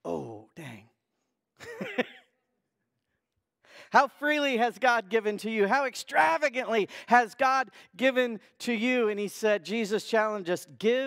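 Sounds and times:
man laughing: 1.6s - 2.3s
man breathing in: 3.6s - 4.0s, 6.9s - 7.1s.

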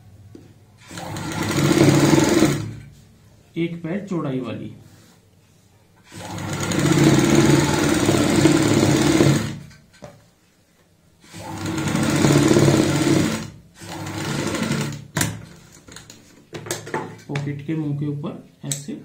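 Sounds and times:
sewing machine running: 0.8s - 2.9s, 6.0s - 9.8s, 11.2s - 15.4s.

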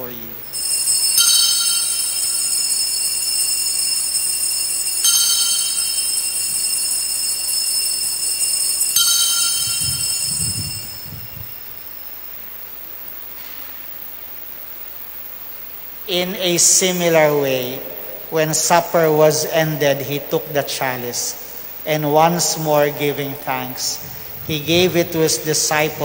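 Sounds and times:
altar bells ringing: 0.0s - 12.4s, 16.1s - 26.0s.

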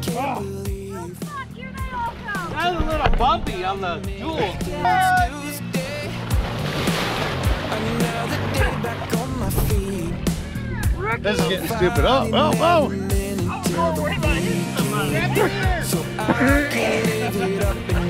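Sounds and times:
music with sung vocal: 0.0s - 18.0s
water splashing: 1.1s - 12.2s, 13.6s - 18.0s.

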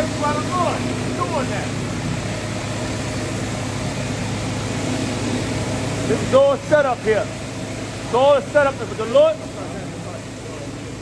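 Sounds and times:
city street traffic hum: 0.0s - 11.0s
engines idling: 0.0s - 11.0s.

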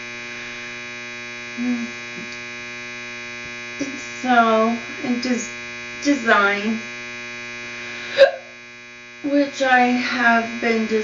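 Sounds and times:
electrical mains hum: 0.0s - 11.0s.

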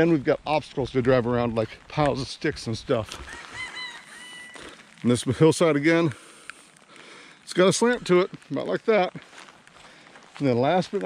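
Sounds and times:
faint outdoor background noise: 0.0s - 11.0s
bird calling: 3.2s - 4.9s.

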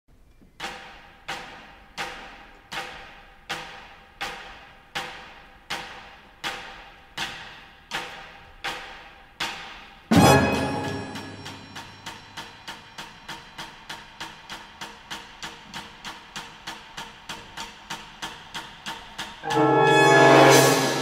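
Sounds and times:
percussion instrument strikes: 10.1s - 13.8s, 19.3s - 21.0s.

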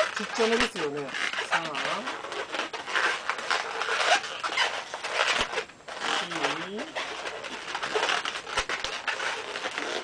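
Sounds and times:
balloon rubbing and squeaking: 0.0s - 10.0s.

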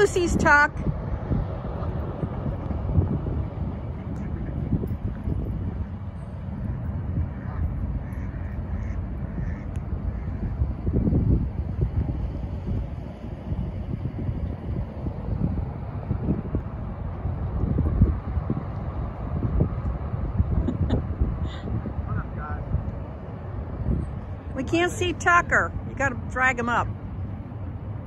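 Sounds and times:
wind buffeting microphone: 0.0s - 28.0s
faint goose honks: 7.3s - 10.6s.

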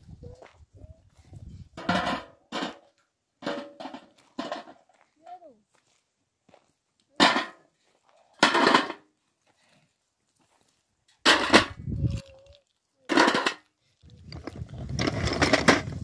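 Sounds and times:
stones clattering into metal basin: 7.2s - 7.6s, 8.4s - 9.0s, 13.1s - 13.6s.

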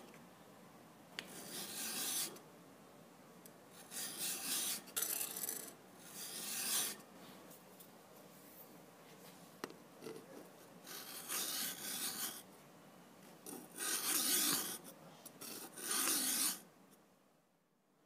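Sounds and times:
file scraping steel blade: 1.3s - 2.4s, 3.8s - 7.0s, 10.9s - 12.4s, 13.5s - 14.8s, 15.4s - 16.6s.

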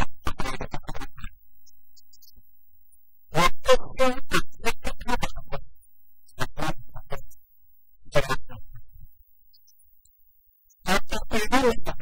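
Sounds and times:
man speaking: 0.0s - 1.4s, 3.3s - 5.7s, 6.4s - 7.3s, 8.1s - 8.9s, 10.8s - 12.0s.

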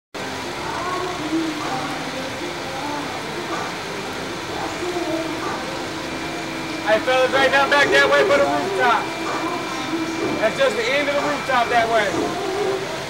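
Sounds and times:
distant indistinct voices: 0.2s - 13.0s
steady background noise: 0.2s - 13.0s.

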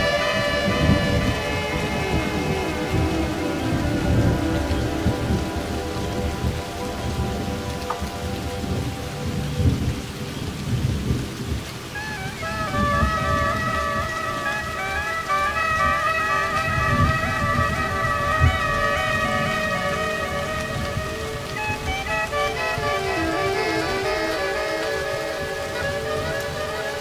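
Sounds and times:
heavy rain: 0.0s - 27.0s
thunder rumbling: 0.0s - 27.0s
woodwind melody: 0.0s - 27.0s.

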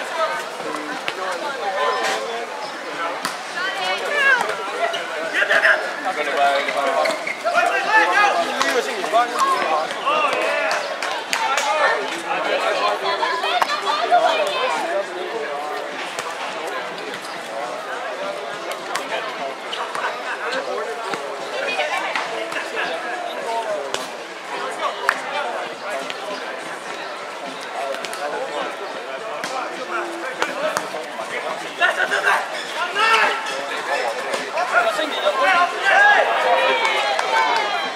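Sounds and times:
people talking and calling out: 0.0s - 37.9s
people shouting: 34.6s - 37.9s.

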